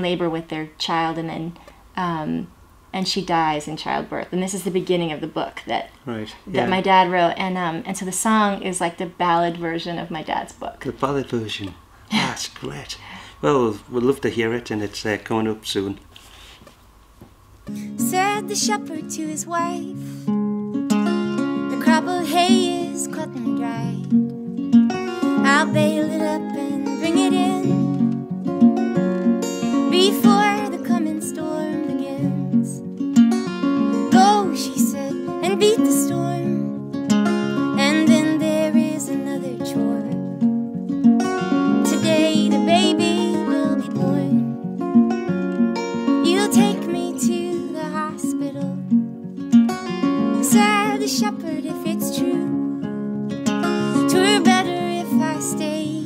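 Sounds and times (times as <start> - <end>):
acoustic guitar playing: 0.0 - 10.6, 17.4 - 56.0
woman singing folk ballad: 17.7 - 20.4, 21.3 - 24.2, 24.9 - 28.2, 29.4 - 33.0, 33.6 - 36.9, 37.5 - 40.5, 41.2 - 44.8, 45.9 - 49.2, 49.9 - 52.9, 53.6 - 56.0.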